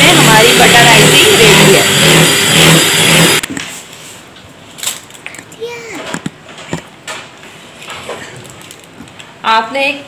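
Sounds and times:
electric hand mixer running: 0.0s - 3.4s.

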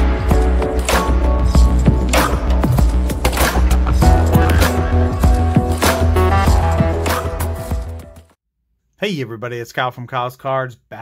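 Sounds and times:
intro music with heavy bass: 0.0s - 8.3s.

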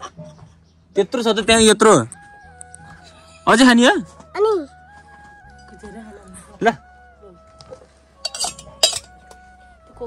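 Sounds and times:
metal drinking vessels clinking: 8.2s - 9.2s.

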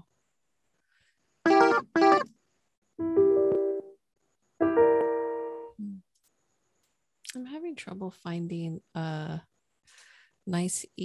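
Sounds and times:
piano chords: 3.0s - 4.0s, 4.6s - 5.8s.

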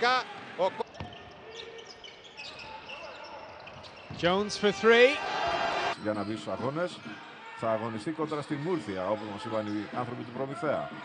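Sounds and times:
sneaker squeaks on hardwood: 0.9s - 4.5s.

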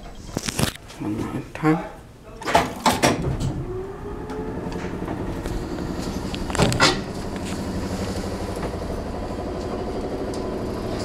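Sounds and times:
elevator machine hum with rattle: 2.0s - 11.0s
loud clatter: 4.3s - 11.0s.

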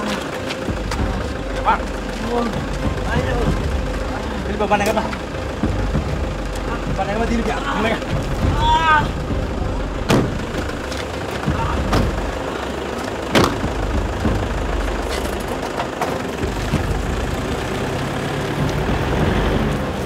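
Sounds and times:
pickup truck engine running: 0.0s - 20.0s
car doors slamming: 9.8s - 12.4s, 13.3s - 14.4s.

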